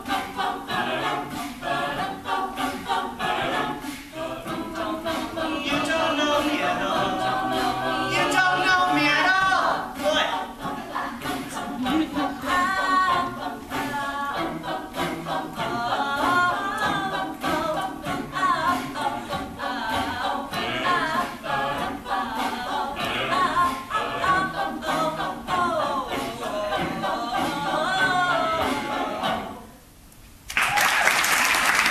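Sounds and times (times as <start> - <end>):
a cappella group singing: 0.0 - 30.0.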